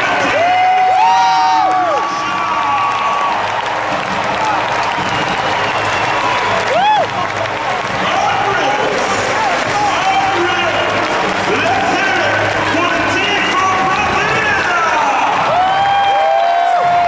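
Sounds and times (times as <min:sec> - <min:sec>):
crowd applauding and cheering: 0:00.0 - 0:17.0.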